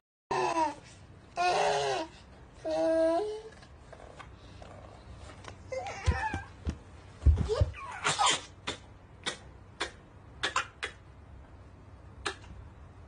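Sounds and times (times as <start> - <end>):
toddler vocal sounds: 1.4 - 3.6
soft thumps: 6.0 - 7.8.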